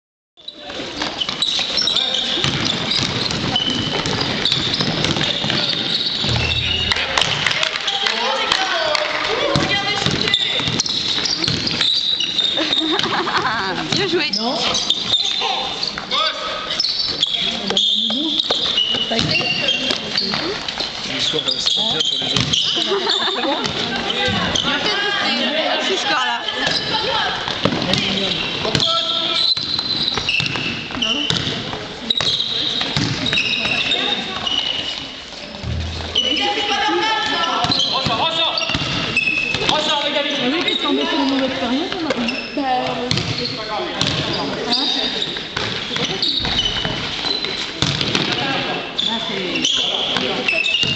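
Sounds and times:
shoes squeaking: 0.4s - 8.5s, 9.4s - 25.3s, 26.1s - 50.9s
players calling out: 0.6s - 47.6s
basketball bouncing on floor: 2.4s - 7.6s, 9.5s - 11.8s, 13.0s - 14.2s, 17.7s - 20.6s, 27.5s - 28.9s, 29.6s - 33.8s, 35.6s - 36.3s, 41.8s - 44.4s, 45.6s - 48.4s.

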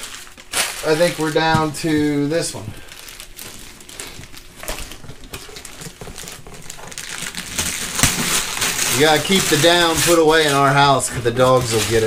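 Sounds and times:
wrapping paper rustling: 0.0s - 12.0s
paper tearing: 5.5s - 12.0s.

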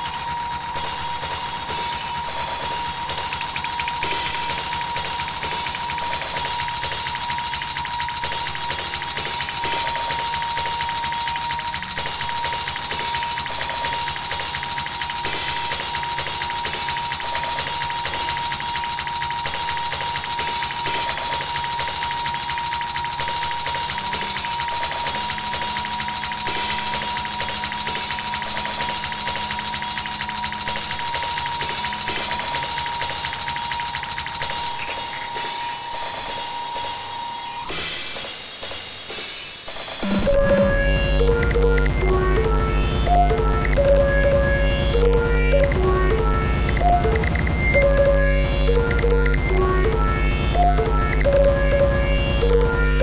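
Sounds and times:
electronic drum beat: 0.0s - 37.1s, 37.8s - 53.0s
bass: 40.0s - 53.0s
high drone tone: 40.0s - 53.0s.

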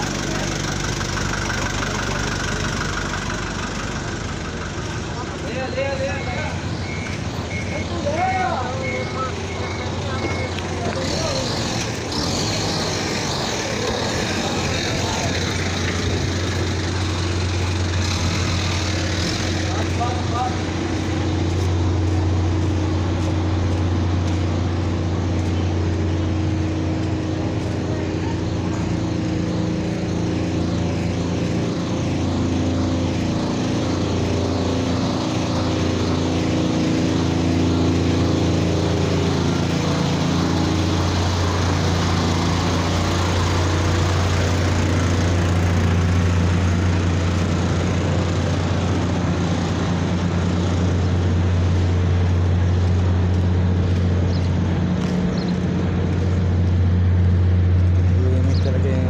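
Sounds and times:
vehicle engines running: 0.0s - 59.0s.

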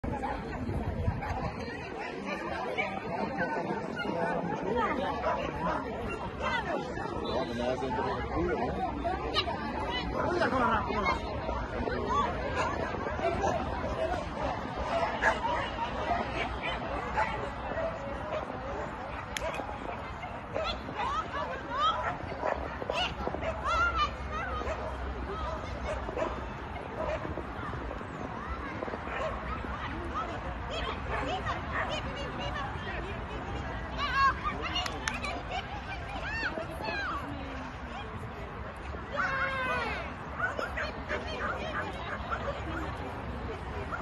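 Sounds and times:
people chatting: 0.0s - 44.0s.

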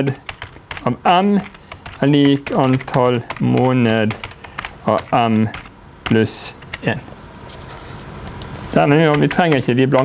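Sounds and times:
man speaking: 0.8s - 7.1s, 8.7s - 10.0s
keyboard key clicks: 9.1s - 10.0s.

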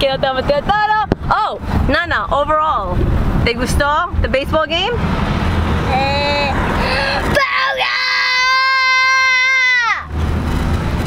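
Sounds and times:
car rumbling on road: 0.0s - 11.0s
young child wailing: 6.0s - 10.1s.

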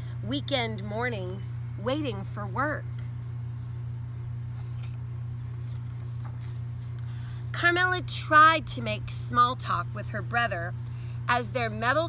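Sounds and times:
steady low hum: 0.0s - 12.0s
book page rustling: 4.5s - 7.0s.

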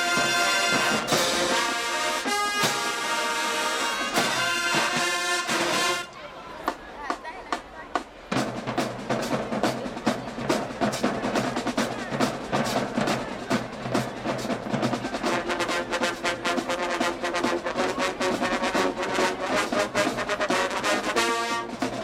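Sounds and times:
brass section playing: 0.0s - 6.2s, 15.2s - 22.0s
drumline strokes: 0.0s - 22.0s.

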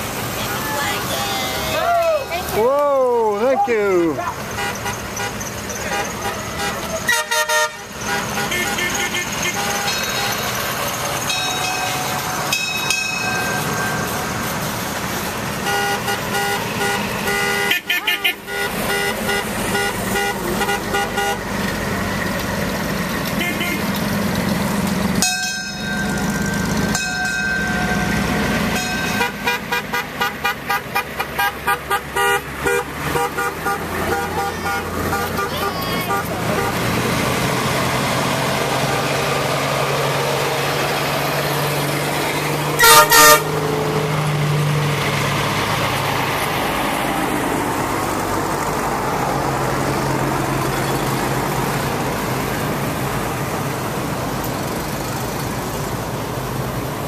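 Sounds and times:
truck engine: 0.0s - 57.0s
vehicles driving past: 0.0s - 57.0s
vehicle horns tooting: 3.4s - 10.6s, 15.6s - 21.5s, 23.4s - 24.0s, 26.1s - 37.1s, 42.8s - 43.6s
loud horn blast: 4.6s - 10.4s, 15.6s - 21.5s, 23.4s - 23.9s, 27.7s - 37.2s, 42.8s - 43.8s.

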